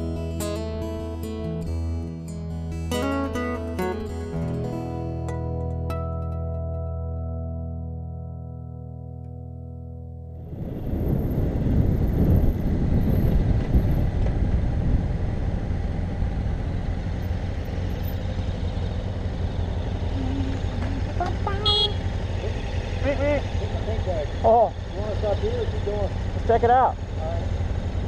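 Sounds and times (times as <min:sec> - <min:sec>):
wind rumble: 0:10.3 - 0:21.2
motorcycle engine: 0:10.4 - 0:28.0
other motorcycle idling: 0:15.2 - 0:28.0.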